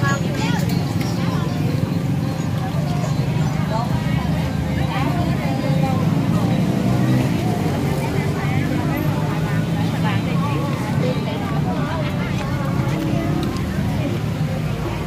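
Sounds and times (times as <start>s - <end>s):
people chatting: 0.0s - 15.0s
traffic rumble: 0.0s - 15.0s.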